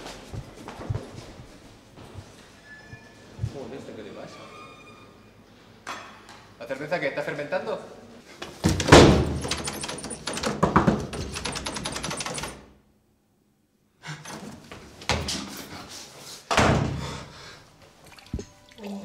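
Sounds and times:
heavy thuds on door: 0:08.6 - 0:11.4
knocking on door: 0:08.6 - 0:12.5.

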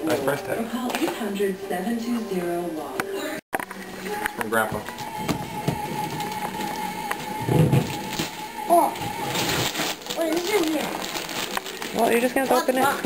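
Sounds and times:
wrapping paper rustling and tearing: 0:05.9 - 0:13.0.

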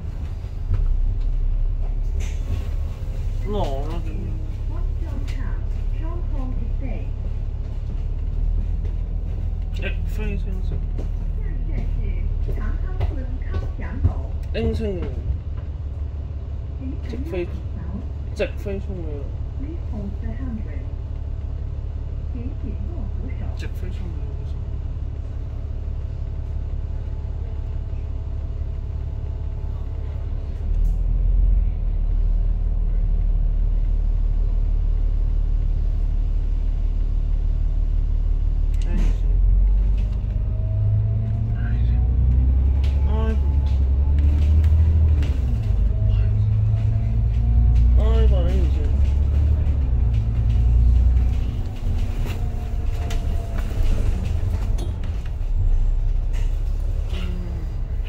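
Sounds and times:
bus engine idling and accelerating: 0:00.0 - 0:58.0.

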